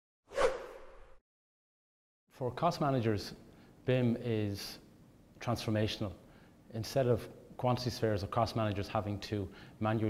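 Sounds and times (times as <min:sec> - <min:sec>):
whoosh sound effect: 0:00.3 - 0:01.2.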